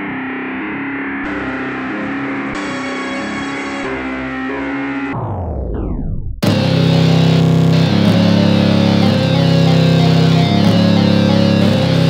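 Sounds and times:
distorted guitar riff: 0.0s - 12.0s
deep bass: 4.8s - 12.0s.

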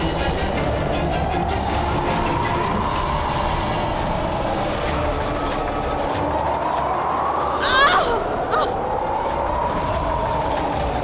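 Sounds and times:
dramatic background score drone: 0.0s - 11.0s.

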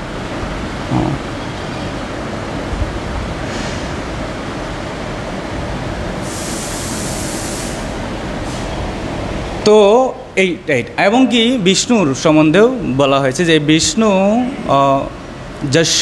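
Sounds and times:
high hiss: 6.2s - 8.9s.

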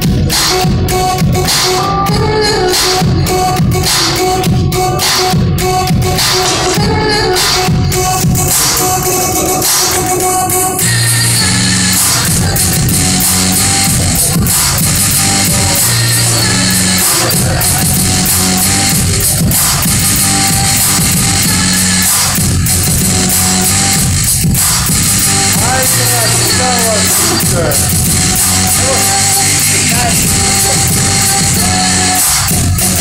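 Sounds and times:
electronic music with steady beat: 0.0s - 33.0s.

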